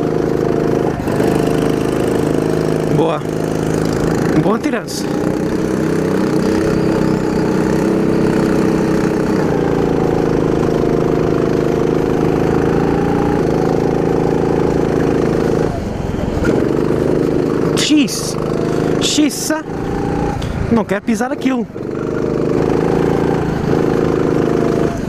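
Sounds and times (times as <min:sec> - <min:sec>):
go-kart engine at high revs: 0:00.0 - 0:25.0.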